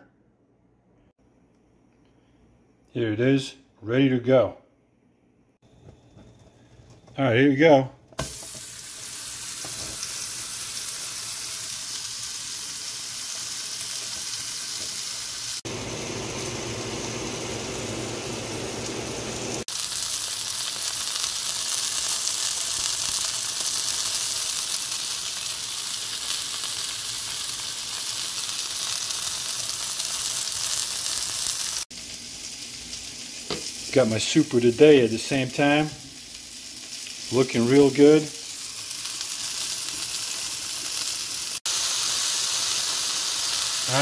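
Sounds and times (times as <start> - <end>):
meat patty sizzling in a skillet: 8.1 - 44.0.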